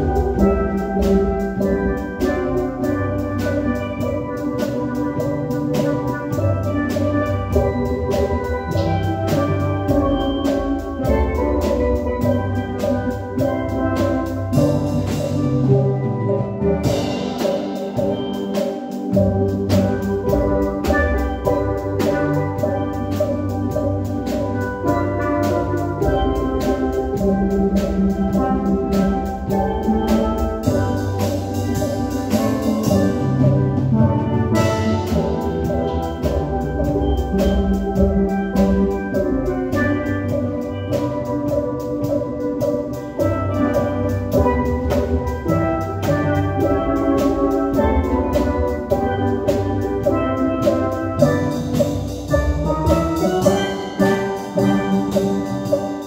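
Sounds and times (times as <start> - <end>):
drums beating: 0.0 - 56.0
steelpans playing melody: 0.0 - 56.0.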